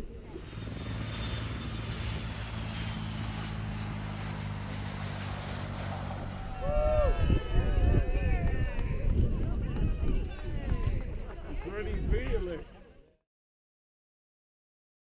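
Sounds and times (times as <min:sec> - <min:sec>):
jet engines running: 0:00.0 - 0:08.3
crowd cheering and shouting: 0:06.4 - 0:11.4.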